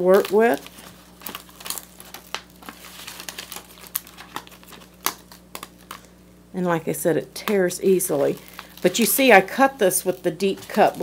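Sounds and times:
adhesive sheet peeling and crinkling: 0:00.1 - 0:06.0.

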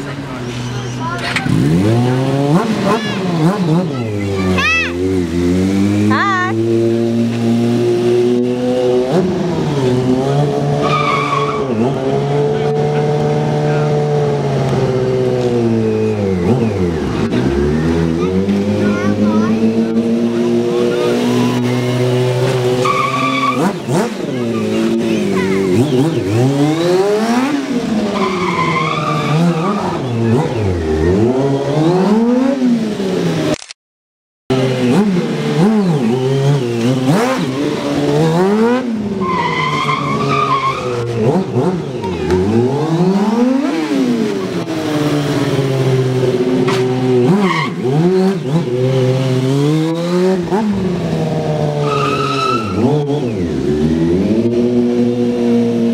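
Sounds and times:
motorcycle engine revving: 0:00.0 - 0:33.6, 0:34.5 - 0:55.9
tyre squeal: 0:10.8 - 0:11.8, 0:22.8 - 0:23.8, 0:28.1 - 0:30.2, 0:39.2 - 0:41.2, 0:51.8 - 0:53.4.

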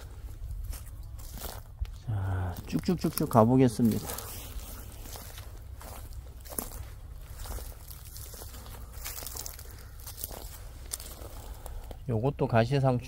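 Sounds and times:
footsteps on dry grass and leaves: 0:00.0 - 0:12.2.

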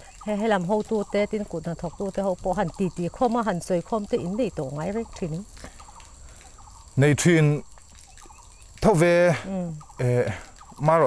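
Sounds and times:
people talking: 0:00.2 - 0:05.4, 0:07.0 - 0:07.6, 0:08.8 - 0:11.0
man drawing out spoken sounds: 0:10.0 - 0:11.0.

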